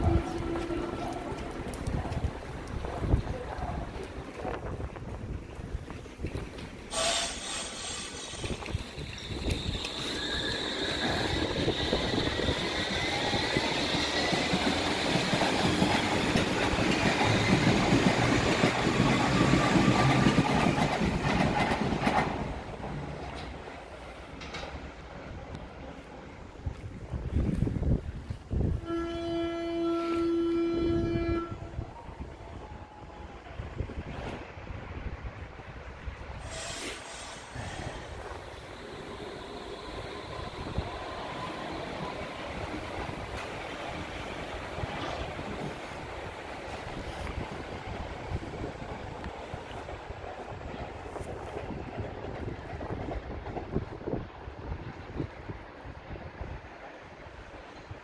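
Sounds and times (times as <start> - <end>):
rail and wheel noise: 0.0 - 58.0
train motor whine: 6.9 - 13.7.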